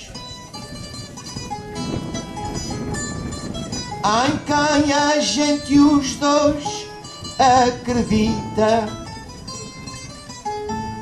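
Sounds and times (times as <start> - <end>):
plucked guitar: 0.0 - 11.0.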